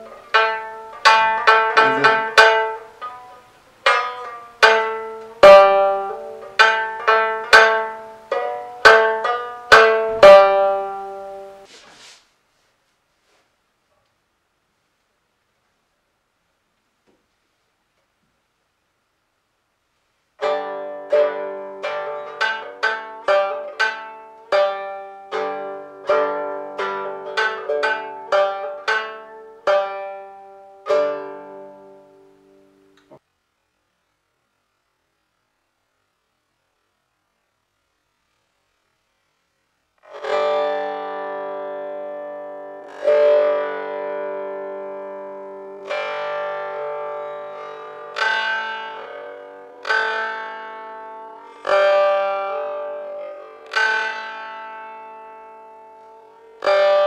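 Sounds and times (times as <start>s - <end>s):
plucked lute notes: 0.0s - 11.7s, 20.4s - 33.2s, 40.0s - 57.0s.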